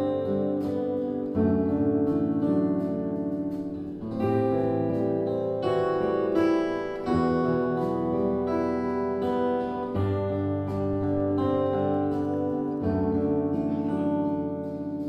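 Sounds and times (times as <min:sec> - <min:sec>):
acoustic guitars playing chords: 0:00.0 - 0:15.0.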